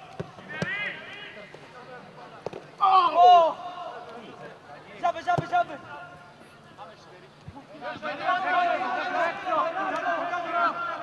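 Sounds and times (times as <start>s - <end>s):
loud shout: 2.8s - 4.0s, 7.8s - 11.0s.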